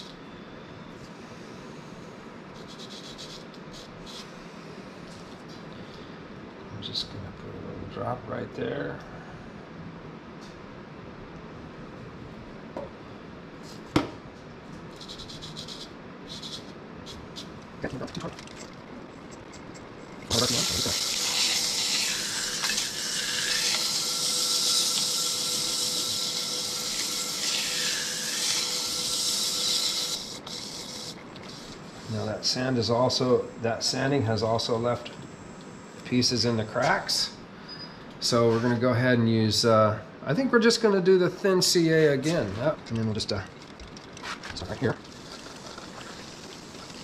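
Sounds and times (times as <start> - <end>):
sandpaper hissing on spinning wood: 2.6 - 4.3, 14.9 - 17.5, 20.3 - 32.4.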